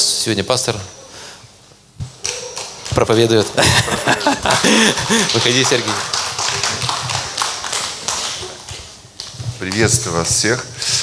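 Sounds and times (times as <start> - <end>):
crowd applause: 2.6 - 8.8.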